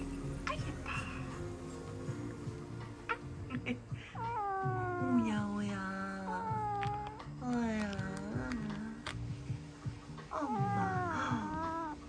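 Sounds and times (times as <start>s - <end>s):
cat meowing: 4.0s - 8.8s, 10.3s - 12.0s.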